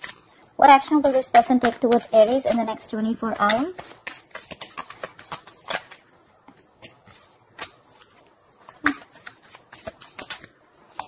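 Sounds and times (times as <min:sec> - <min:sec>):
cards being shuffled: 0:00.0 - 0:00.3, 0:00.9 - 0:11.0.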